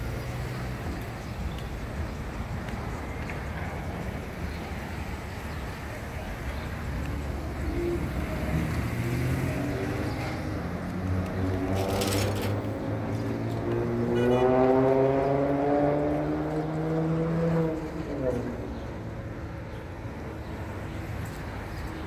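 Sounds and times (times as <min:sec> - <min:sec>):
vehicle engines running: 0:00.0 - 0:22.0
vehicle accelerating: 0:07.2 - 0:18.8.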